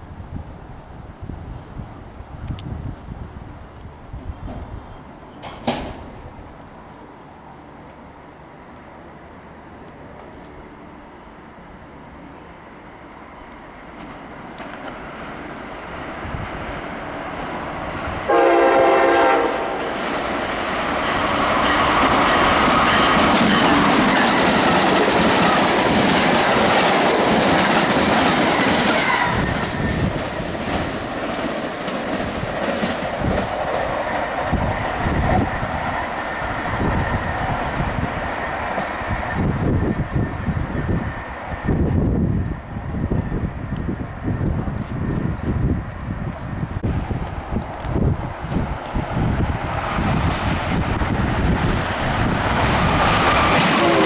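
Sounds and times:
electric train passing: 0:00.0 - 0:54.0
train wheel clatter and rumble: 0:01.5 - 0:06.7, 0:13.9 - 0:18.3, 0:19.3 - 0:54.0
train horn blast: 0:18.3 - 0:19.9, 0:53.5 - 0:54.0.

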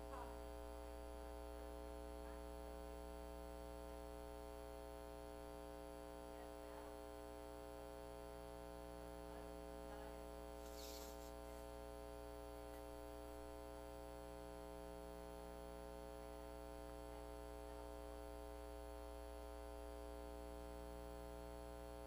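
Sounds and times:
electrical mains hum: 0:00.0 - 0:22.0
short hiss: 0:10.6 - 0:11.4.

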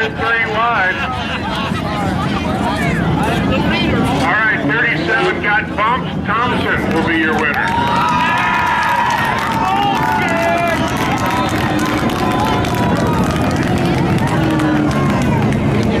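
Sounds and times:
race car engines revving: 0:00.0 - 0:16.0.

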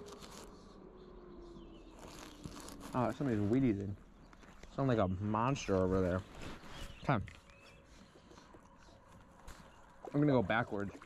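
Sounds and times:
snack wrapper crinkling: 0:00.0 - 0:00.5, 0:01.9 - 0:03.2.

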